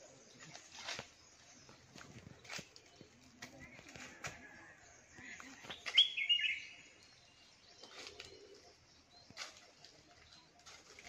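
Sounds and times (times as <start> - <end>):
bird whistled call: 5.9 - 6.8.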